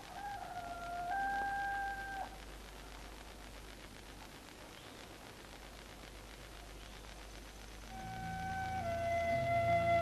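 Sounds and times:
rooster crowing: 0.0 - 2.4.

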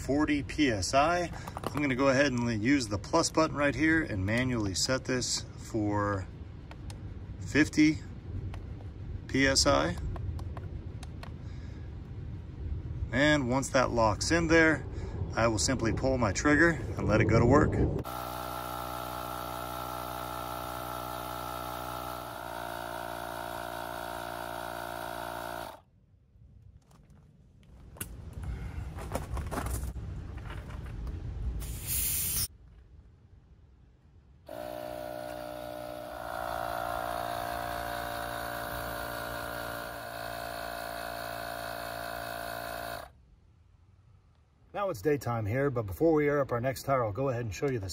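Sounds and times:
tire inflator compressor buzzing: 18.0 - 25.8, 34.5 - 43.2
brief air hiss: 31.6 - 32.5.

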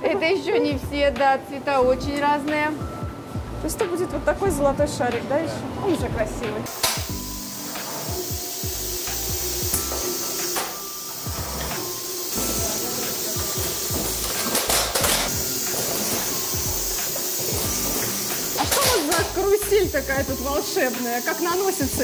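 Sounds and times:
background music: 0.0 - 22.0
printing machine hissing: 6.7 - 22.0
short pneumatic air hisses: 6.7 - 22.0.

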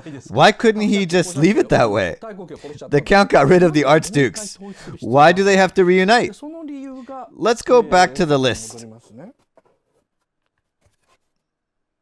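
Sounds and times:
paper rustling: 8.6 - 11.6.

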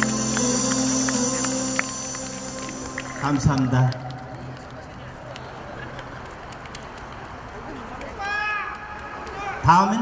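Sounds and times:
low note of backing music: 0.0 - 4.4.

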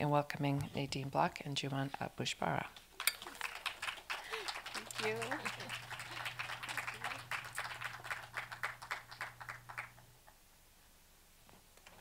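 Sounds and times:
low steady hum: 0.0 - 11.6
audience applause: 3.0 - 10.4.

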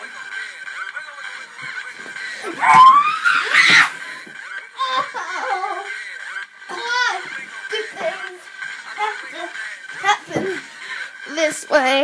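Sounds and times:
body thumping on floor: 1.7 - 4.4
person crying out: 2.4 - 4.0.

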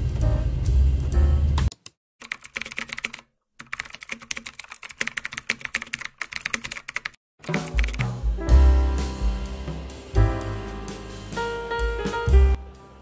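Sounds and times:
music: 0.0 - 1.7, 7.4 - 13.0
rapid clicking of keys: 1.7 - 8.0.

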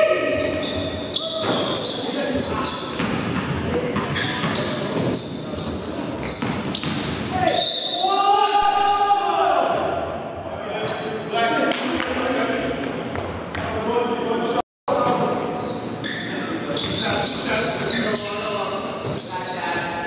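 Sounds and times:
basketball bouncing on gym floor: 6.2 - 7.3
players shouting: 7.3 - 10.0.

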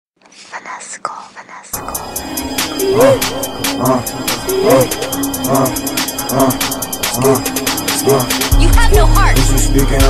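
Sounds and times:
person whispering: 0.2 - 2.1
hip-hop beat: 1.8 - 10.0.

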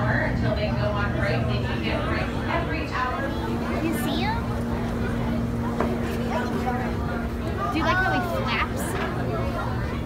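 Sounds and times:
people talking: 0.0 - 10.0
steady low hum: 0.0 - 10.0.

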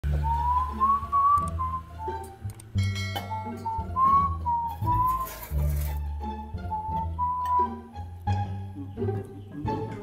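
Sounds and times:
background music with bass line: 0.0 - 10.0
man whistling a tune: 0.2 - 2.3, 3.2 - 5.3, 6.7 - 7.8.

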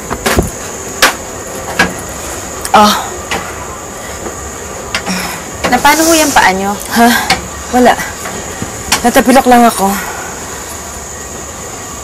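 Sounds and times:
thin high whine: 0.0 - 12.0.

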